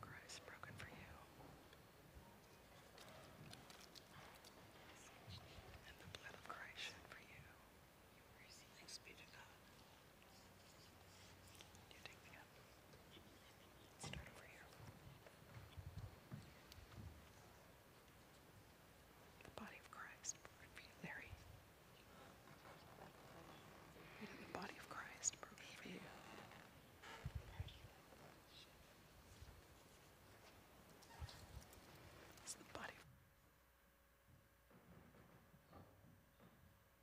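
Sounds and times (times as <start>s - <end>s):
person whispering: 0.0s - 1.4s, 3.9s - 15.0s, 19.4s - 29.4s, 32.4s - 33.1s.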